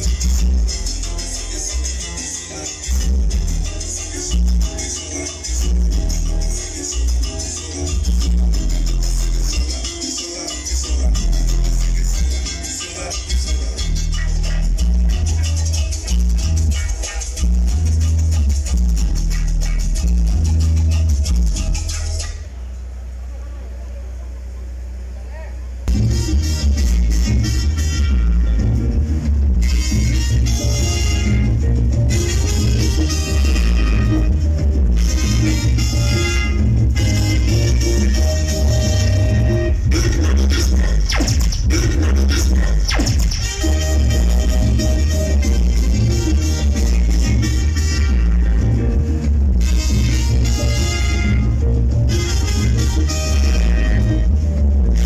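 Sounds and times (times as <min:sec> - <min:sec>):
low bass drone: 0:00.0 - 0:10.0, 0:10.7 - 0:55.0
loud dance music: 0:00.0 - 0:22.5, 0:25.9 - 0:55.0.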